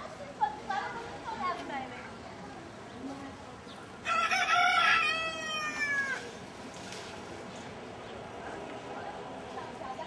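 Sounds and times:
rooster crowing: 4.0 - 6.2.

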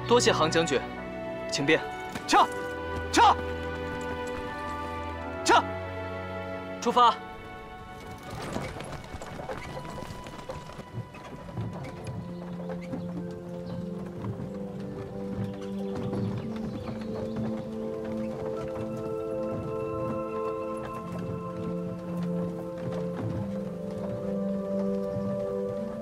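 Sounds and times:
hooves clip-clopping on dirt: 0.0 - 26.0
music with long held notes: 0.0 - 26.0.

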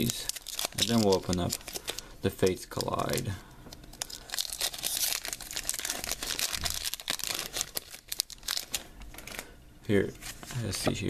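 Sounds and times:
foil wrapper crinkling and tearing: 0.0 - 9.5.

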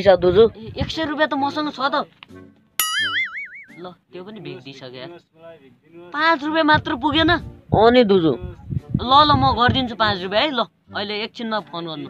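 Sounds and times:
cartoon boing sound effect: 2.8 - 3.8.

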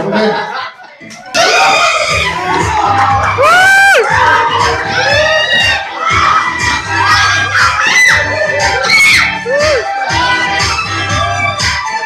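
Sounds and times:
audience shouting and cheering: 1.3 - 12.0
music with repeating bass beat: 1.4 - 12.0
shrill whoops: 7.0 - 12.0.

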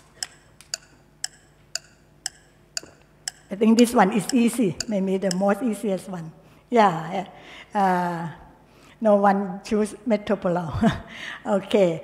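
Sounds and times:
countdown timer ticking: 0.0 - 6.0.

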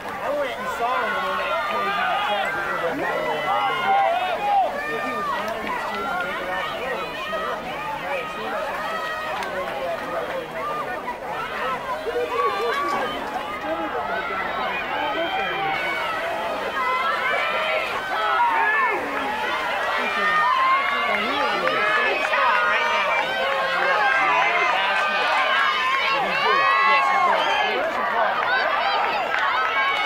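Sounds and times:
crowd shouting and cheering: 0.0 - 30.0.

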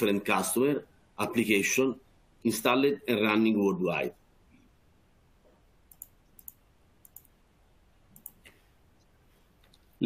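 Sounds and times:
computer mouse clicks: 5.9 - 7.4, 8.2 - 8.6.

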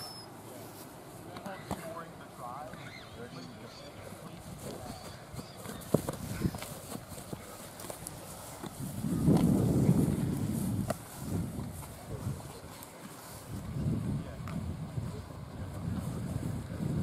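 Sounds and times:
distant voices: 0.0 - 17.0
feet running on grass: 4.0 - 17.0
balls being handled: 4.1 - 12.0.

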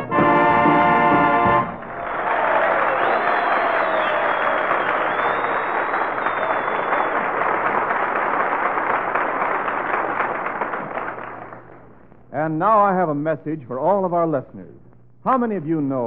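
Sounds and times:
audience applauding: 0.9 - 12.0
whistles from audience: 1.9 - 7.8.

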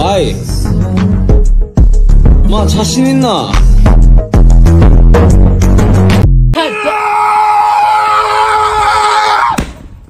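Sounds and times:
music with heavy bass beat: 3.7 - 6.5
man yelling high-pitched: 6.6 - 8.5.

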